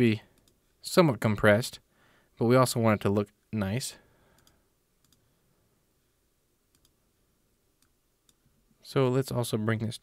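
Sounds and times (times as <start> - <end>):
computer mouse clicks: 0.3 - 0.6, 4.3 - 5.2, 6.7 - 7.0.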